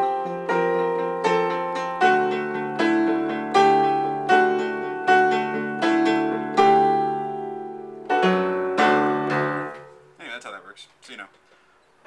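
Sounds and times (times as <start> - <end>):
upright piano chords: 0.0 - 10.3.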